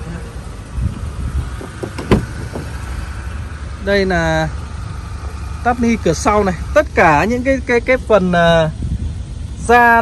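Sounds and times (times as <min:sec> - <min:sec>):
car door latch click: 0:01.6 - 0:02.7.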